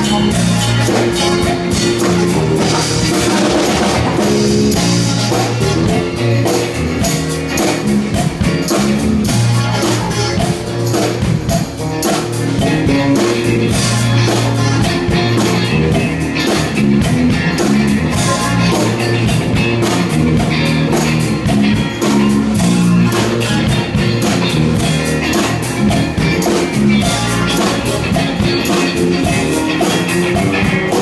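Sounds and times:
band playing funky rock: 0:00.0 - 0:31.0.

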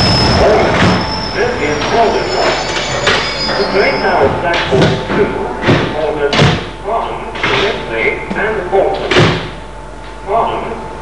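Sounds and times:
high-pitched train squeal: 0:00.0 - 0:04.4
train rumble: 0:00.0 - 0:08.8.

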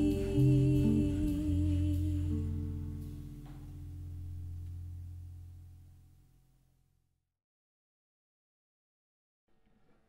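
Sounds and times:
low held bass note: 0:00.0 - 0:06.5.

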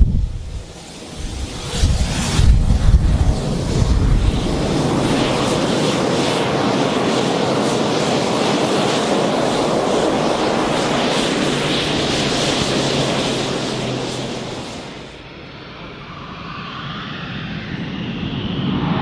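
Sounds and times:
jet engines running: 0:00.0 - 0:19.0.

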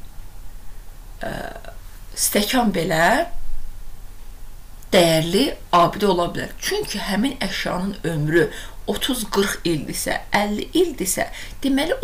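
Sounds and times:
low steady hum: 0:00.0 - 0:12.0
woman's throaty vocal sound: 0:01.2 - 0:01.8.

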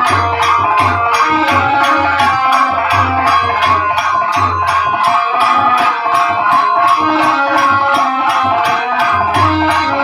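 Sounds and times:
jingling rattle percussion: 0:00.0 - 0:10.0
sustained melody line: 0:00.0 - 0:10.0.

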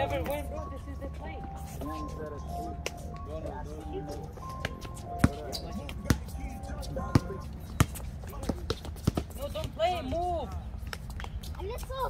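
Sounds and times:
basketball bouncing on concrete: 0:04.0 - 0:11.9.

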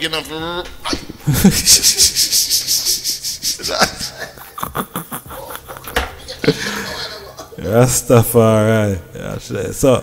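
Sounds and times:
fast rubbing strokes: 0:01.6 - 0:03.7.

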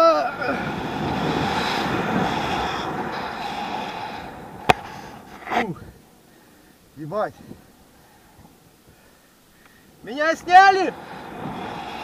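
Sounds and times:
person yelling: 0:00.0 - 0:00.6, 0:10.1 - 0:11.0
wind rushing over microphone: 0:00.0 - 0:06.2, 0:07.0 - 0:08.7, 0:10.0 - 0:12.0.

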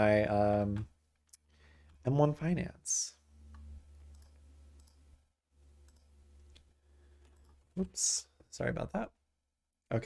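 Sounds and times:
computer mouse clicks: 0:03.5 - 0:05.0, 0:05.8 - 0:07.6.

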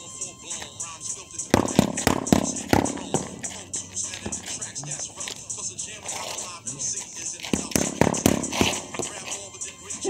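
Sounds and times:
hip hop music: 0:00.0 - 0:10.0
boxing gloves hitting focus mitts: 0:01.6 - 0:04.8, 0:07.5 - 0:09.2.

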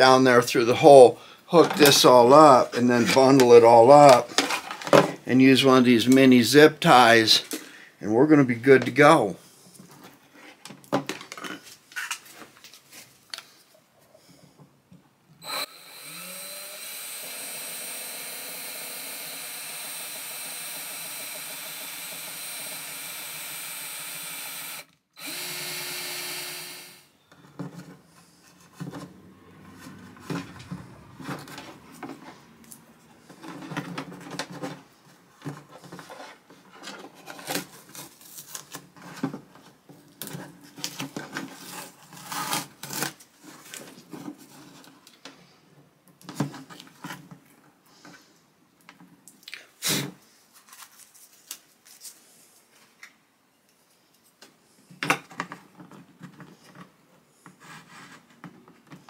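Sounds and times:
cordless drill boring through wood: 0:15.4 - 0:27.1.

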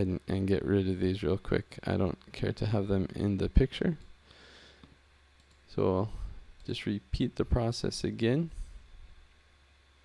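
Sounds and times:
computer mouse clicks: 0:05.4 - 0:05.6.

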